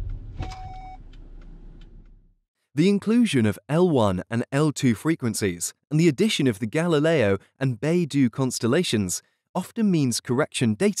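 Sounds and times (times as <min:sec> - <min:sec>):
short electronic beep: 0:00.4 - 0:01.0.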